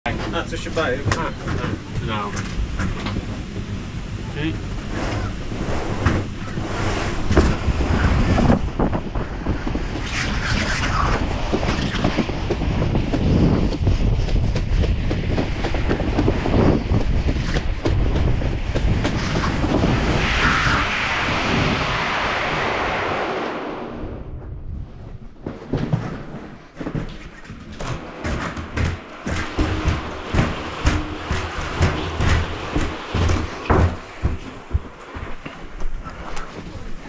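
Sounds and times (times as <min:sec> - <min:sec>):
wind buffeting microphone: 0:00.1 - 0:26.8, 0:27.6 - 0:37.0
tube sliding rushing rumble: 0:00.1 - 0:37.0.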